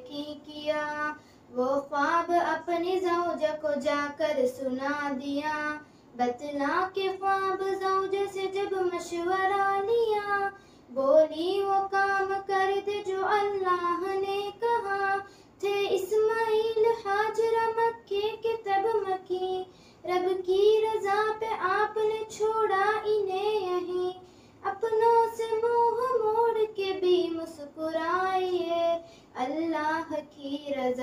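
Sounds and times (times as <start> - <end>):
girls singing devotional song: 0.0 - 31.0.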